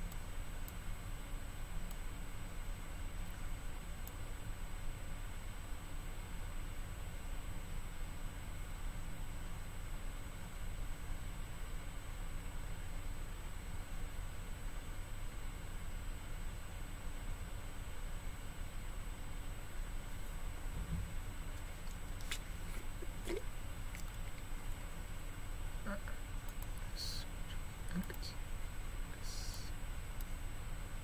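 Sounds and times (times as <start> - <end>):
faint high-pitched whine: 0.0 - 31.0
steady hiss: 20.1 - 28.4, 29.0 - 30.5.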